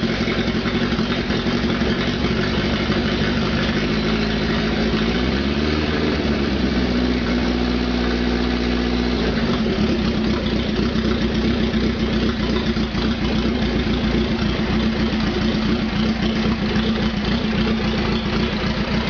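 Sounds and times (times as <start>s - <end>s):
motorcycle engine idling: 0.0s - 19.0s.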